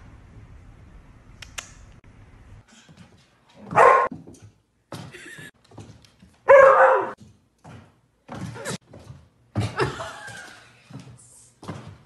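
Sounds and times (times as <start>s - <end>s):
dog barking loudly: 3.7s - 4.1s, 6.5s - 7.2s.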